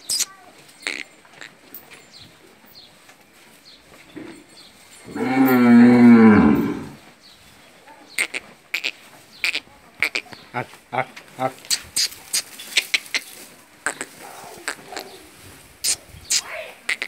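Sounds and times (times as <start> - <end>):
cow mooing: 5.1 - 7.0.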